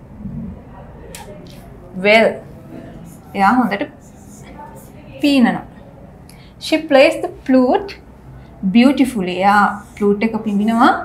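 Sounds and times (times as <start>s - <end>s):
faint low murmur: 0.0s - 11.0s.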